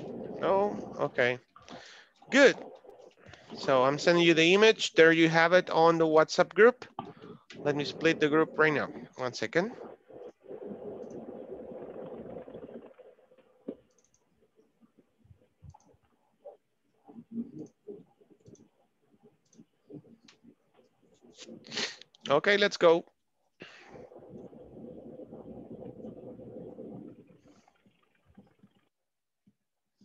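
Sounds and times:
steady rumbling noise: 0:00.0 - 0:01.4, 0:07.6 - 0:12.9.

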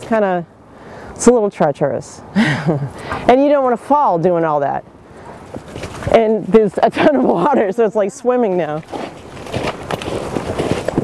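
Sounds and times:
footsteps crunching in wet snow: 0:08.6 - 0:11.0.

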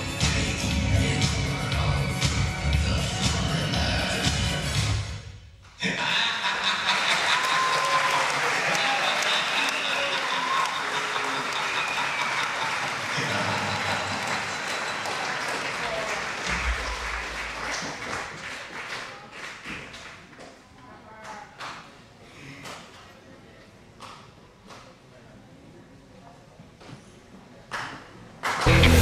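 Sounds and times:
dance music: 0:00.0 - 0:05.2, 0:28.6 - 0:29.0
audience applause: 0:06.3 - 0:20.3, 0:28.4 - 0:29.0
people cheering: 0:06.4 - 0:19.3.

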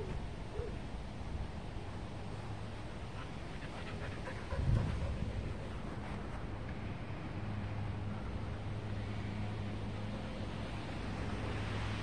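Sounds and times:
dog panting: 0:03.1 - 0:06.4.

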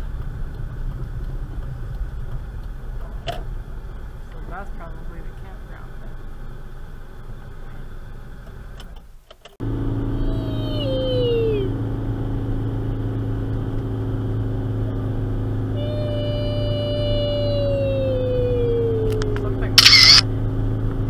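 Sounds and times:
car engine droning under load: 0:00.0 - 0:21.0
child mimicking engine noise: 0:10.0 - 0:11.9, 0:15.7 - 0:20.2.

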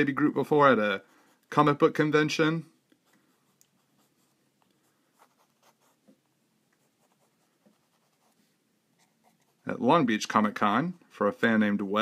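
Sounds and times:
pencil scratching on paper: 0:03.1 - 0:06.1, 0:06.8 - 0:09.7.

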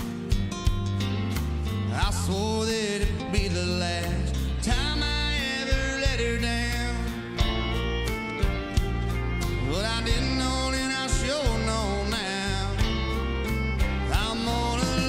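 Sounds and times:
live country band playing: 0:00.0 - 0:15.0
male lead vocal: 0:01.8 - 0:07.4, 0:09.5 - 0:13.2, 0:13.8 - 0:15.0.

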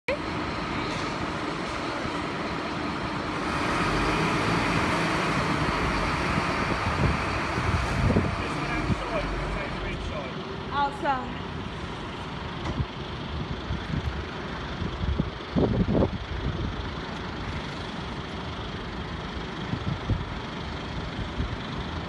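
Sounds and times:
fire engine diesel engine running: 0:00.1 - 0:22.0.

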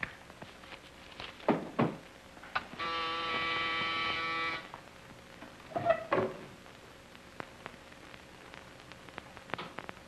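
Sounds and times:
electric buzzer: 0:02.7 - 0:04.7.

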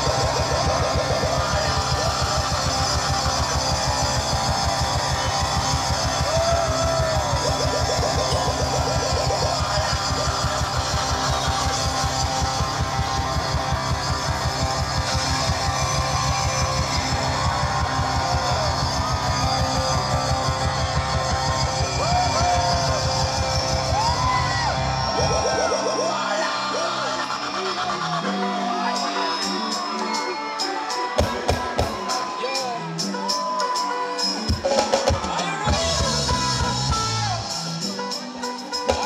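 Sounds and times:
fast bass beat: 0:00.0 - 0:25.9, 0:35.7 - 0:37.6
electric guitar: 0:00.0 - 0:39.0
keyboards: 0:00.0 - 0:39.0.

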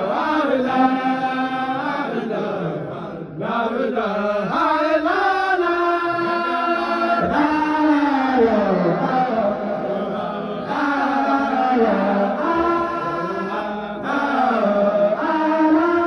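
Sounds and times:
men chanting in long held notes: 0:00.0 - 0:16.0.

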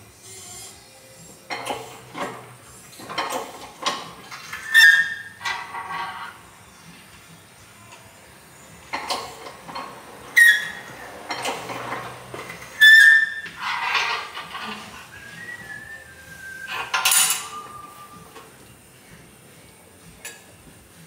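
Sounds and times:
metal plates clanking: 0:01.5 - 0:06.4, 0:08.8 - 0:18.7
metal sliding on metal: 0:01.5 - 0:06.4, 0:08.9 - 0:15.4.

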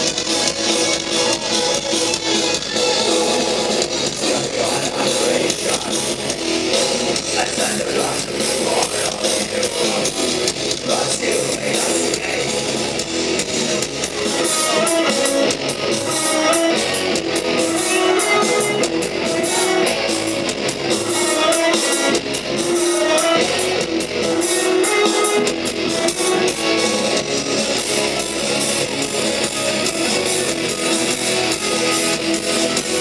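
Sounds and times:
rock band playing live: 0:00.0 - 0:33.0.

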